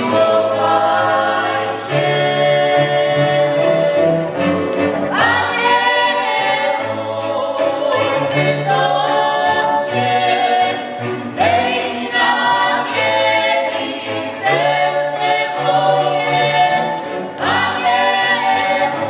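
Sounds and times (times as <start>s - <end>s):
musicians singing together: 0.0s - 19.0s
violins playing: 0.0s - 19.0s.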